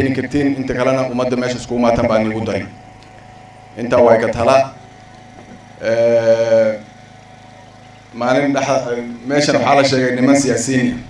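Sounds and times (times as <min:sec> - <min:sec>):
man speaking into a microphone: 0:00.0 - 0:02.8, 0:03.8 - 0:04.8, 0:08.2 - 0:11.0.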